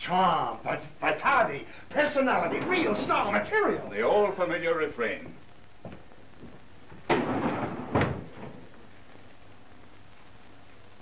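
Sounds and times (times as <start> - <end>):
glass door banging shut: 7.1 - 8.6.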